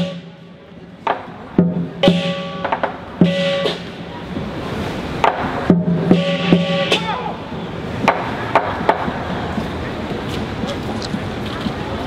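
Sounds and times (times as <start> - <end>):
drum strikes: 1.0 - 4.5, 5.2 - 7.2, 8.0 - 9.2.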